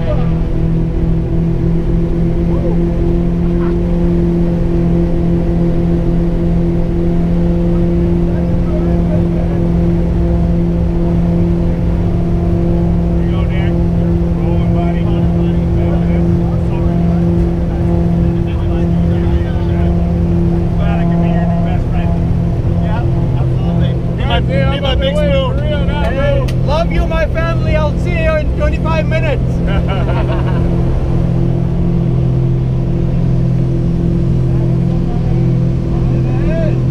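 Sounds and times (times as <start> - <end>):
propeller plane engines droning: 0.0 - 36.9.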